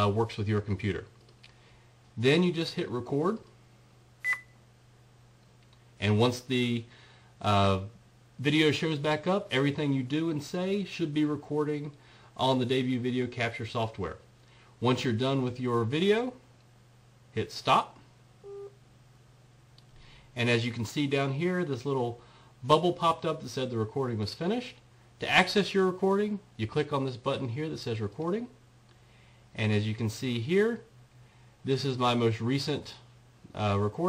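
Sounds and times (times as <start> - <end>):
faint steady hum: 0.0 - 34.0
short electronic beep: 4.2 - 4.6, 18.4 - 18.8.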